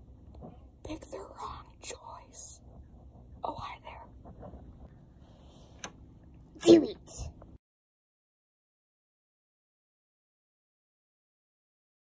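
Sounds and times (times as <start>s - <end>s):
person whispering: 0.8s - 2.6s, 3.4s - 4.2s, 6.6s - 7.3s.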